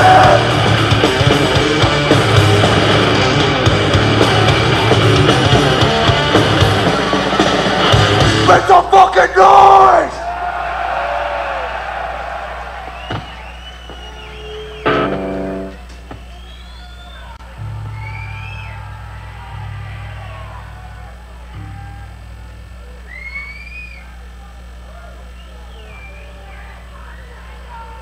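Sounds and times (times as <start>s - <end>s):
crowd cheering and whistling: 0.0s - 8.2s, 10.1s - 27.9s
low bass notes: 0.0s - 8.9s, 14.8s - 16.2s, 17.4s - 23.4s
amplifier hum: 11.0s - 28.0s
guitar chord ringing: 14.8s - 15.8s, 17.4s - 23.2s.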